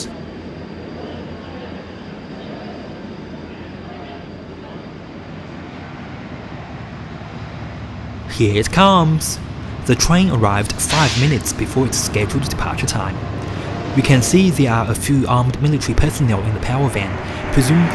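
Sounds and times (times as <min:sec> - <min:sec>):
trains rumbling: 0:00.0 - 0:17.9
murmur of people: 0:00.8 - 0:05.7.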